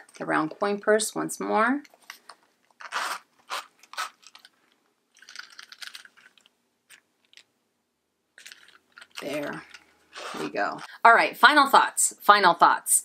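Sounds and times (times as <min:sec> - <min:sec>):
handling rustles and clicks: 0:01.8 - 0:07.5, 0:08.4 - 0:09.9
metal zipper pulled open: 0:02.8 - 0:04.5, 0:08.4 - 0:10.9.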